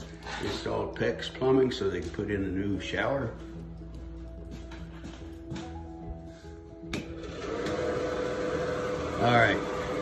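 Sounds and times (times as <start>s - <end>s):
fan whirring: 6.7s - 10.0s.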